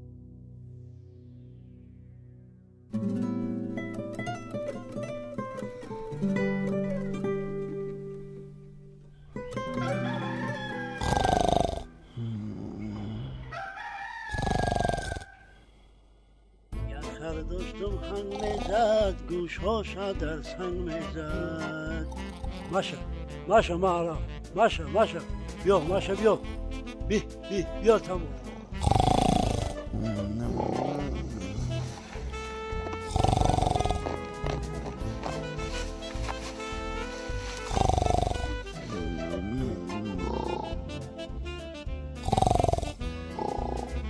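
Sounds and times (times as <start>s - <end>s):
soft music: 0.0s - 13.4s, 16.7s - 44.0s
rooster crowing: 9.7s - 11.4s, 13.4s - 15.6s
person snoring loudly: 11.0s - 13.5s, 14.3s - 15.4s, 18.3s - 18.8s, 28.7s - 35.8s, 37.5s - 41.1s, 42.2s - 44.0s.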